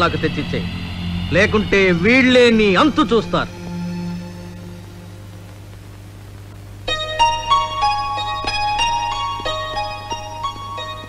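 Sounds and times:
background music with bright notes: 0.0s - 5.4s, 6.8s - 11.0s
low hum: 0.0s - 10.8s.

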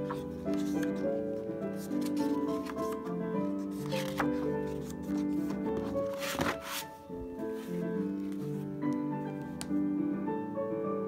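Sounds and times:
page turning rustle: 0.0s - 9.7s
background music with held notes: 0.0s - 11.0s.

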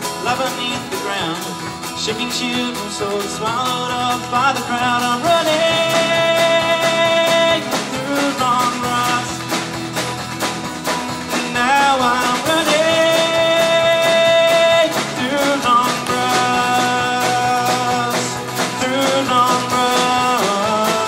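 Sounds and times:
drum kit beat: 0.0s - 21.0s
strummed acoustic guitars: 0.0s - 21.0s.

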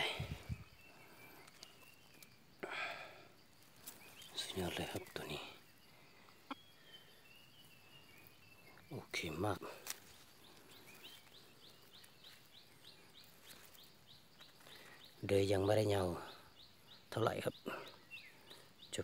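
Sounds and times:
short high bird chirps: 6.4s - 8.9s.

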